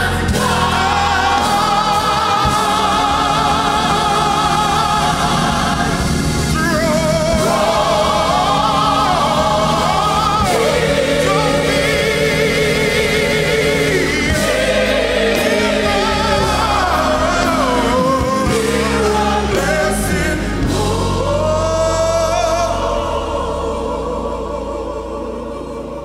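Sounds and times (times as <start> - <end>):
choir singing: 0.0 - 26.0
instrumental accompaniment: 0.0 - 26.0.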